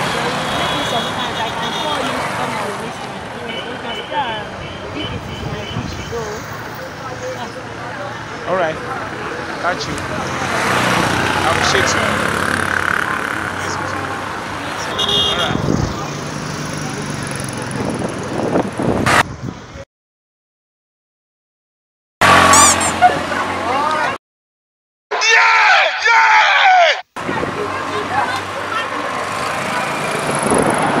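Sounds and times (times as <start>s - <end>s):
motorcycles passing: 0.0s - 19.2s, 27.2s - 31.0s
road traffic: 0.0s - 19.9s, 22.2s - 24.2s, 25.2s - 31.0s
car passing close by: 9.9s - 13.6s
indistinct voices: 22.3s - 24.2s.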